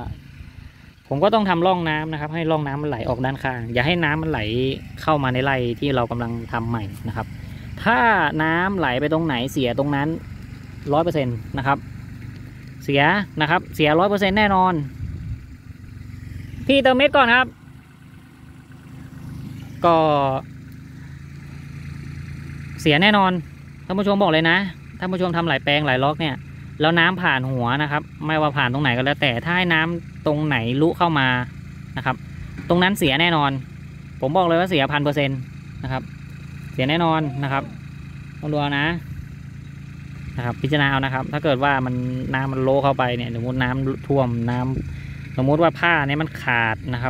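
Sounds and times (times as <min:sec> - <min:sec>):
tractor engine running: 0:00.0 - 0:47.0
man speaking: 0:01.1 - 0:10.2, 0:16.6 - 0:17.6, 0:19.7 - 0:20.5, 0:36.8 - 0:39.0.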